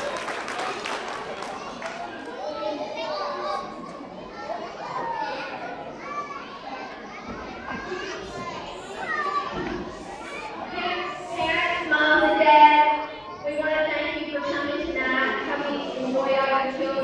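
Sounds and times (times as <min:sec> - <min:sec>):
children chattering and calling out: 0:00.0 - 0:17.0.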